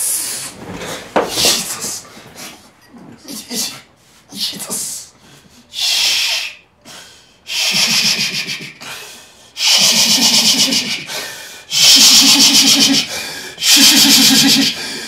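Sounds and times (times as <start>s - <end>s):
man repeating hissing syllables: 7.5s - 8.9s, 9.6s - 11.1s.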